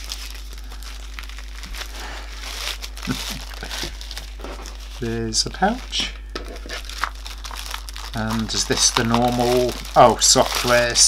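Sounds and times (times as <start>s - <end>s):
plastic sleeve crinkling: 0.0s - 11.0s.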